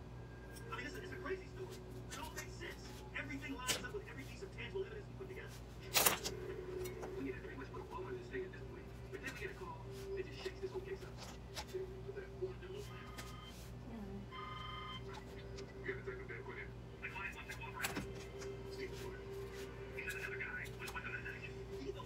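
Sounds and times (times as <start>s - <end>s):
muffled television voices: 0.0s - 22.0s
steady hum: 0.0s - 22.0s
television music: 0.0s - 22.0s.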